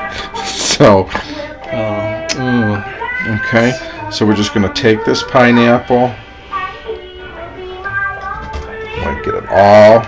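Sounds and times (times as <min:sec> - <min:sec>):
music with sung vocals: 0:00.0 - 0:10.0.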